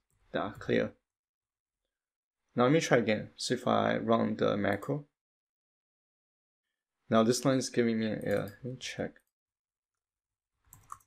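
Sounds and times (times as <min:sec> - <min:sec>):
computer keyboard keystrokes: 0:10.7 - 0:11.0.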